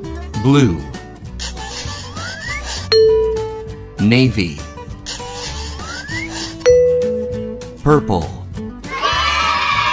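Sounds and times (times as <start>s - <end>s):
bell-like ding: 2.9s - 4.0s, 6.7s - 7.8s
cheerful children's music: 2.9s - 4.6s.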